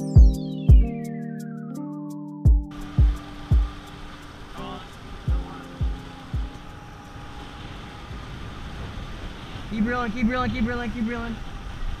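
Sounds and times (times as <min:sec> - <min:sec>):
bass drum hits in music: 0:00.1 - 0:00.9, 0:02.5 - 0:03.8, 0:05.3 - 0:06.6
wind: 0:02.7 - 0:12.0.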